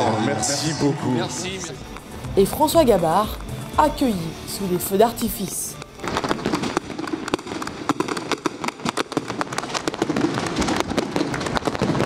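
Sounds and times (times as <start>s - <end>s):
fireworks popping and crackling: 1.5s - 4.1s, 4.8s - 12.0s.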